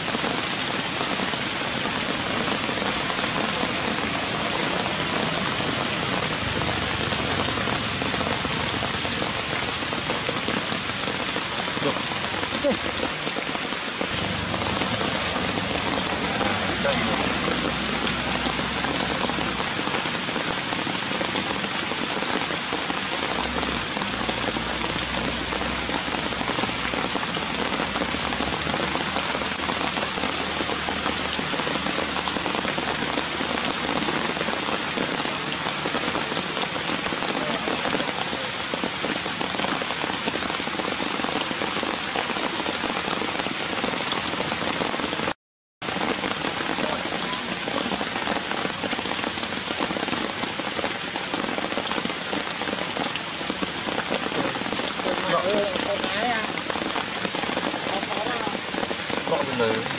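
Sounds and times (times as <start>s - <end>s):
heavy rain falling: 0.0s - 59.9s.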